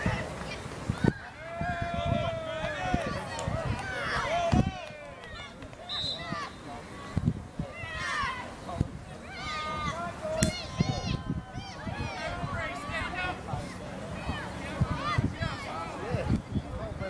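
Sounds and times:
voices shouting and calling: 0.0 - 17.0.

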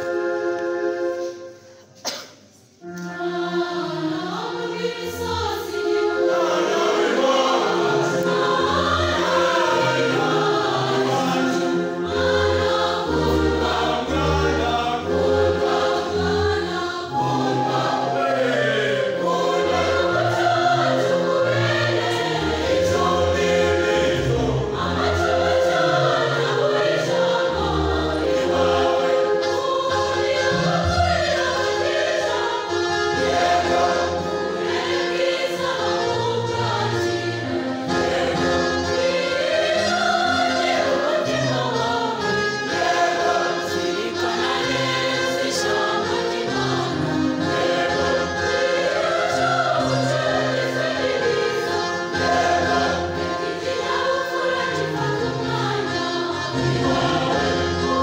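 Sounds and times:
choir singing a hymn: 0.0 - 1.8, 2.8 - 58.0.

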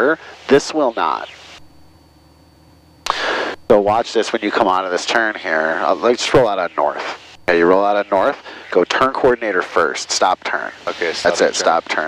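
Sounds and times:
faint aircraft engine drone: 0.0 - 12.0
breath on microphone: 3.1 - 3.6.

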